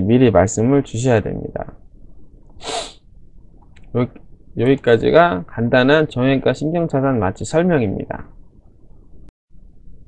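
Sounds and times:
man breathing in sharply: 0:02.6 - 0:03.0.

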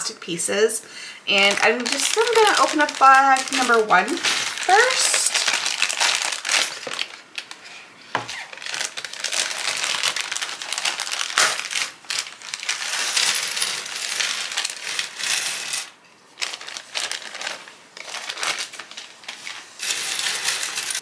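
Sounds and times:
plastic puzzle pieces pouring: 0:01.4 - 0:07.6, 0:08.4 - 0:21.0.

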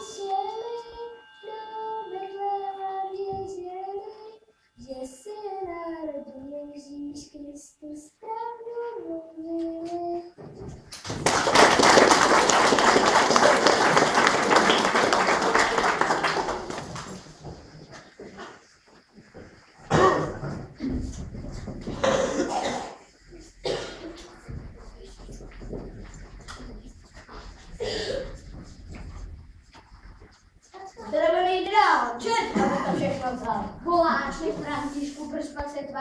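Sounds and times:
girl singing: 0:00.0 - 0:10.7, 0:30.8 - 0:36.0
crowd applauding: 0:11.0 - 0:17.6.

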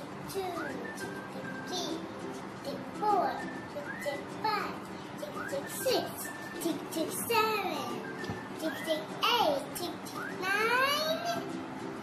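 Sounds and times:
children's voices: 0:02.6 - 0:08.0, 0:08.6 - 0:11.5.

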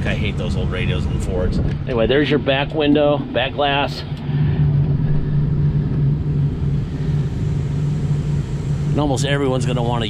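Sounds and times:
diesel engine idling: 0:02.2 - 0:10.0.

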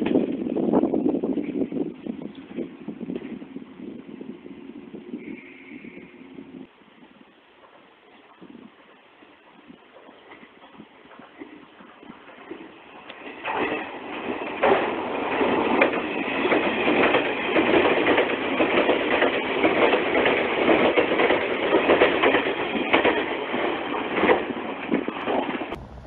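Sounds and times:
wheels clicking over rail joints: 0:09.9 - 0:26.0
electric train passing at speed: 0:11.0 - 0:26.0.

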